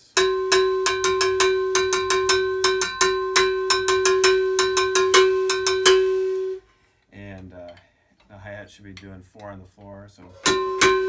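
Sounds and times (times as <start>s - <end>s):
cowbell struck with drumstick: 0.0s - 6.6s, 10.4s - 11.0s.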